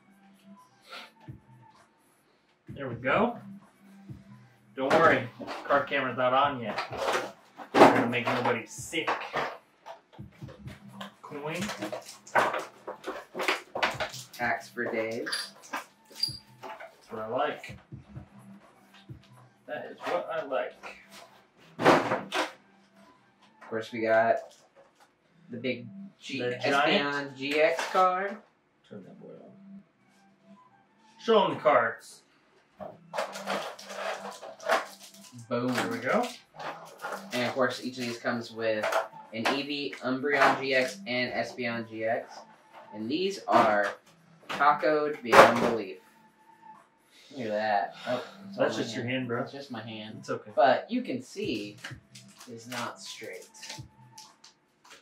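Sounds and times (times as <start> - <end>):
plastic packaging crinkling: 33.2 - 38.2.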